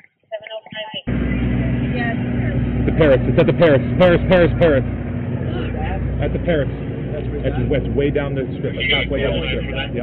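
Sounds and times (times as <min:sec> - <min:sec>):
vehicle engine hum: 0:01.0 - 0:10.0.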